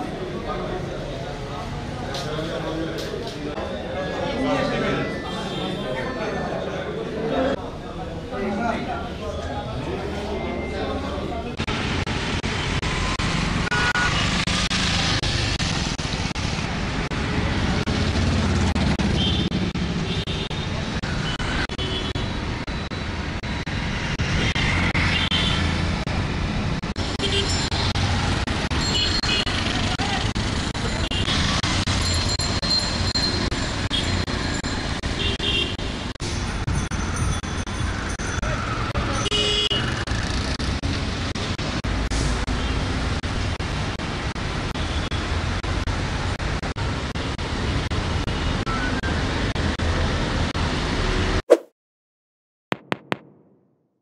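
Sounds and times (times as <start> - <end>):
street traffic: 0.0 - 51.6.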